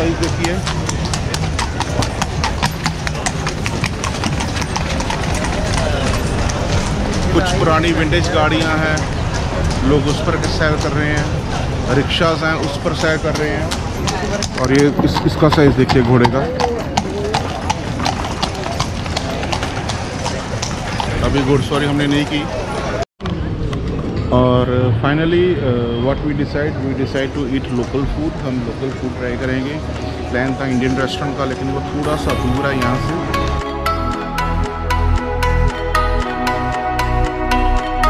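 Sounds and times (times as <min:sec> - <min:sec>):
horse hooves on cobblestones: 0:00.0 - 0:24.3, 0:26.6 - 0:35.8.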